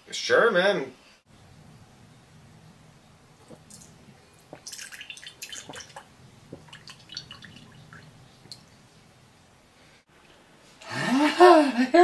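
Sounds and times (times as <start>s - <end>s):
faint low hum: 1.3s - 11.8s.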